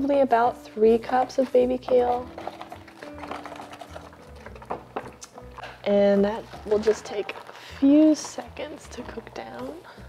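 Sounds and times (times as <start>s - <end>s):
quiet background music: 0.0s - 10.0s
plastic box handling: 1.9s - 9.3s.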